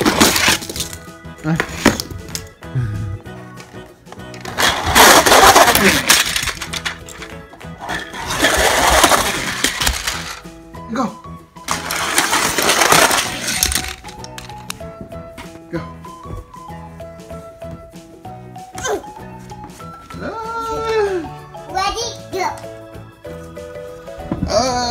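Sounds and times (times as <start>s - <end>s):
background music: 0.0s - 24.9s
toy cars rattling down plastic slide: 4.3s - 10.4s, 11.7s - 14.7s.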